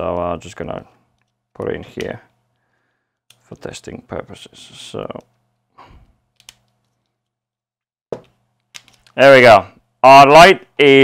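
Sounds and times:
sharp clicks of wires: 0:06.1 - 0:07.3, 0:08.2 - 0:09.2.

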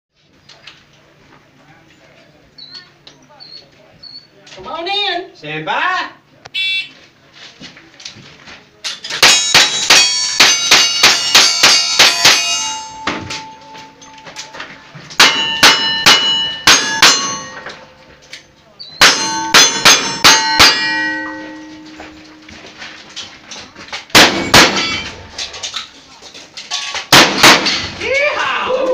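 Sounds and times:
steel targets ringing: 0:09.1 - 0:25.8, 0:26.7 - 0:28.0
rifle shots: 0:24.1 - 0:25.2, 0:27.1 - 0:27.9
shotgun shots: 0:24.1 - 0:25.2, 0:27.1 - 0:28.0.

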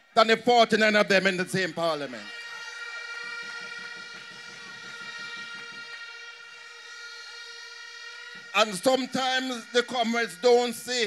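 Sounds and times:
crowd noise: 0:00.0 - 0:11.0
horns blowing: 0:00.0 - 0:11.0.

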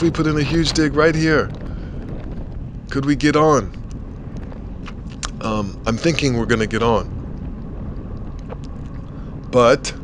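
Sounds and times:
wind rush: 0:00.0 - 0:10.0.

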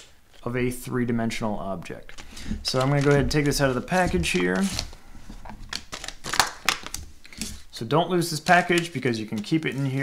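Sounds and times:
plastic packaging crinkling: 0:02.1 - 0:07.7.

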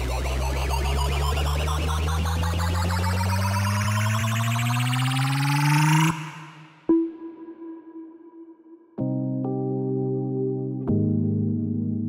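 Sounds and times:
electronic dance music rising sweep: 0:00.0 - 0:08.8.

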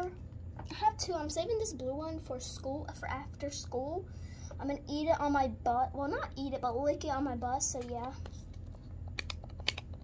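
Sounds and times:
plastic cap clicks: 0:09.1 - 0:10.0.

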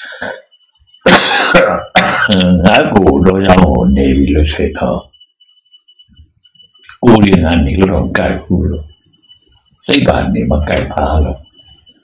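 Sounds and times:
man clearing his throat: 0:01.0 - 0:02.7
man speaking: 0:01.1 - 0:05.1, 0:06.9 - 0:08.9, 0:09.8 - 0:11.5.

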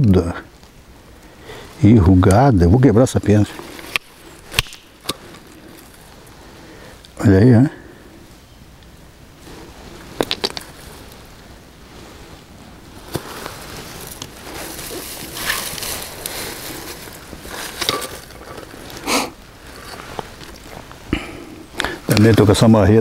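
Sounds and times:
stones rustling on gravel: 0:03.3 - 0:06.6, 0:09.4 - 0:21.1.

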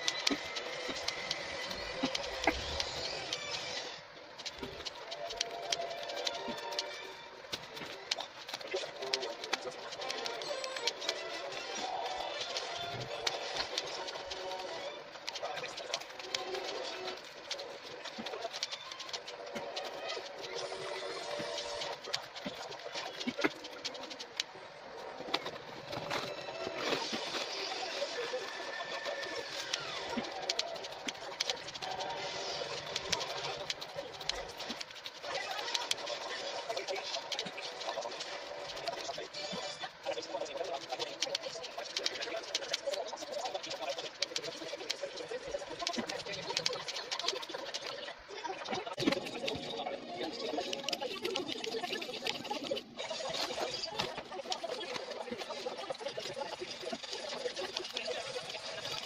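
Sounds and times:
scissors cutting cardboard: 0:00.0 - 0:48.1, 0:48.8 - 0:59.0.

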